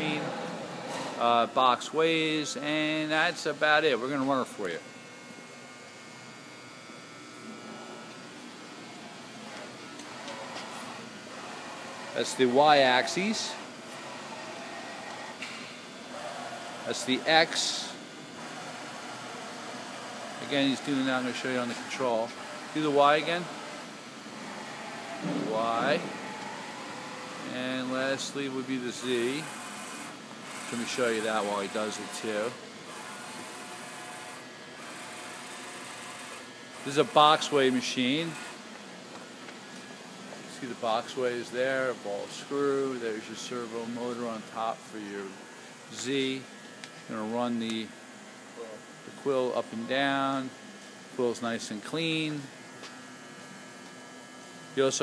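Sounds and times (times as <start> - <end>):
milling machine whine: 0.0 - 50.3
workshop hum: 0.0 - 55.0.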